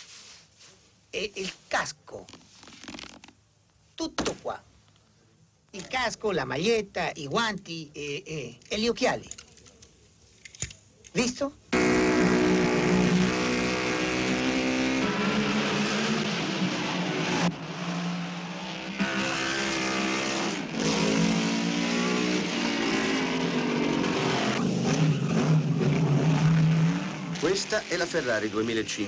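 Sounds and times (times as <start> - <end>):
racing engine accelerating: 11.7 - 28.7.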